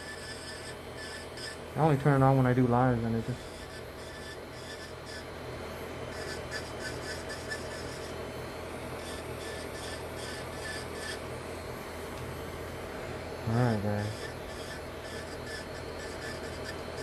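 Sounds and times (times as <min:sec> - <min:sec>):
electric nail drill grinding: 0:00.0 - 0:17.0.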